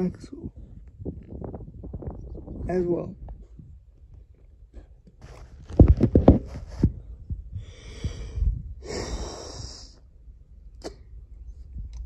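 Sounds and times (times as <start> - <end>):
low knocks and thumps: 0.4 - 4.4, 5.2 - 8.8
person sniffing: 8.8 - 10.0.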